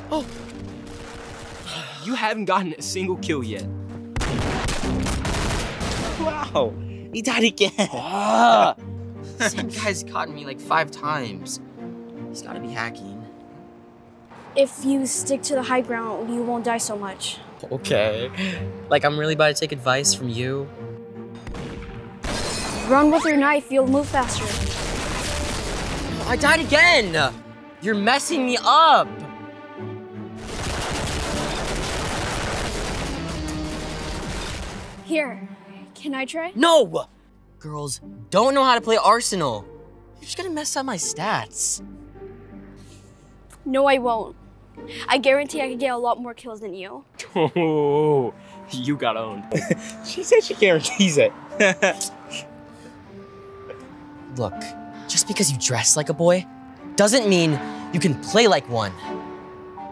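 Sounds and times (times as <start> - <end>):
background music: 0.0 - 59.9.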